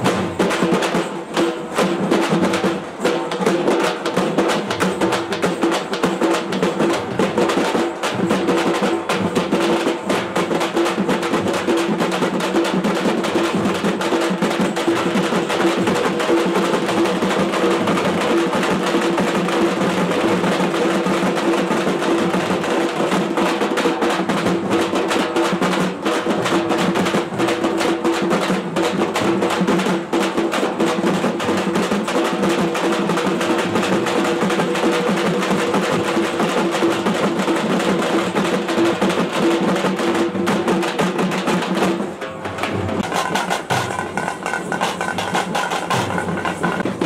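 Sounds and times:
processional drums: 0.0 - 47.0.

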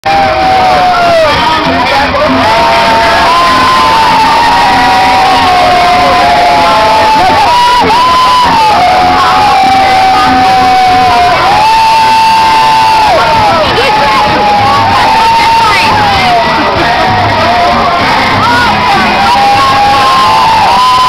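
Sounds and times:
crowd cheering and whooping: 0.0 - 21.0.

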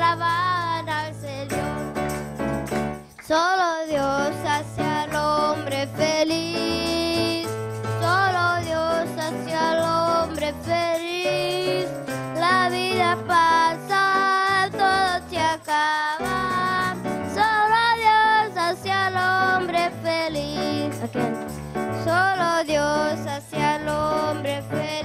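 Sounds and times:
instrumental backing with bass line: 0.0 - 3.2, 3.9 - 25.0
girls singing into microphones: 8.0 - 16.8.

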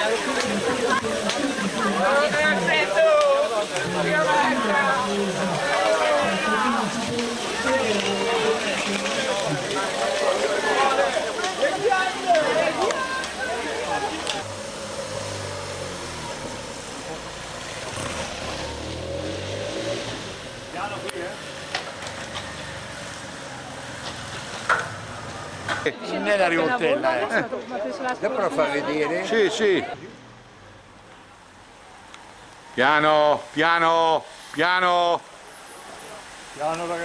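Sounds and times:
motorcycle passing on wet road: 0.0 - 25.9, 35.3 - 37.0.

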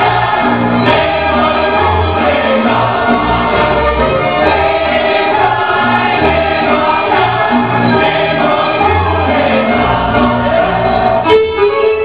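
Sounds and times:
group of voices singing folk music: 0.0 - 12.0.

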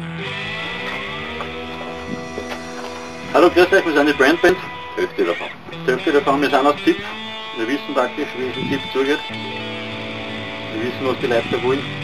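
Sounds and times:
sustained guitar chords: 0.0 - 10.8
tones gliding upward: 0.4 - 6.1.

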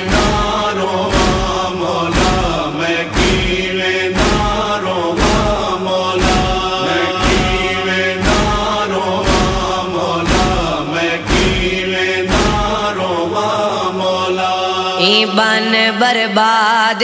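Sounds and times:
male chorus chanting: 0.0 - 17.0
deep thump: 0.1 - 12.9.

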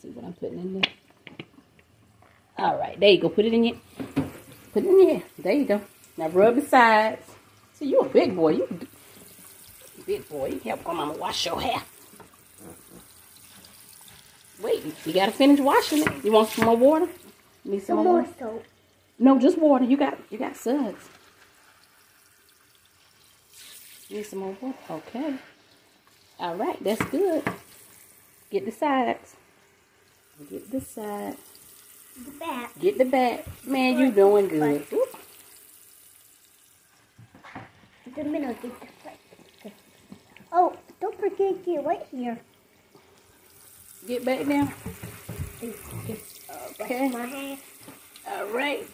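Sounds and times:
water running into a sink: 0.7 - 48.9
woman speaking: 2.6 - 3.8, 4.8 - 7.2, 7.8 - 8.9, 10.0 - 11.9, 14.6 - 18.4, 24.1 - 25.4, 26.4 - 27.5, 32.8 - 35.2, 44.0 - 44.8, 46.0 - 47.3, 48.3 - 48.9
shampoo lather crackling: 2.6 - 37.2, 37.9 - 48.9.

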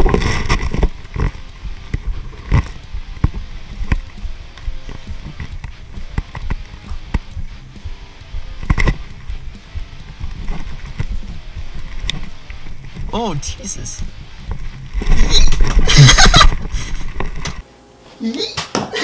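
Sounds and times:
footsteps: 0.0 - 17.6.

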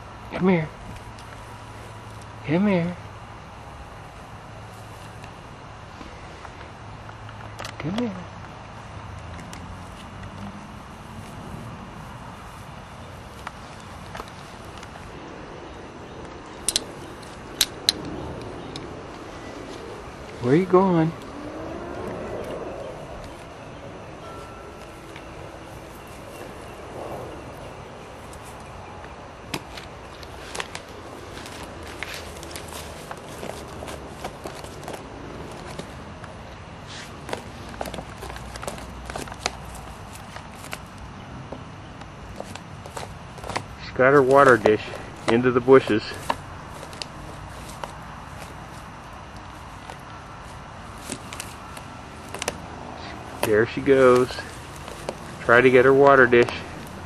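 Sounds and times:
outdoor background noise: 0.0 - 57.0
rustling of leaves and grass: 0.0 - 57.0.

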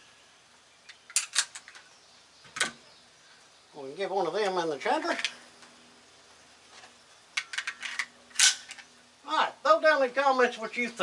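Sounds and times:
pistol metallic clicks: 7.4 - 8.9.

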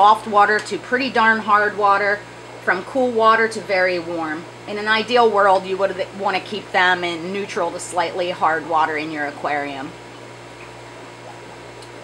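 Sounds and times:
machine hum with faint hiss: 0.0 - 12.0.

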